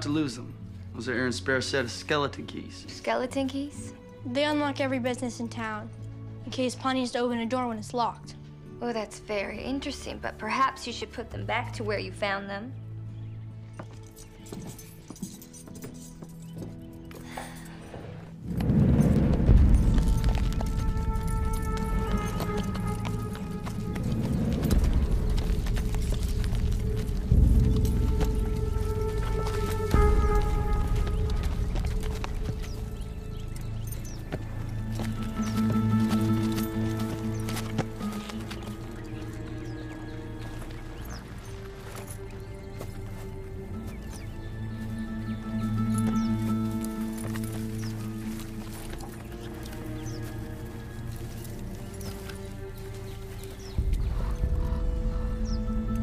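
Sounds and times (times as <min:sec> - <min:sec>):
film score music: 0:00.0 - 0:56.0
horse hooves clip-clopping: 0:13.6 - 0:56.0
low thuds: 0:18.4 - 0:38.1.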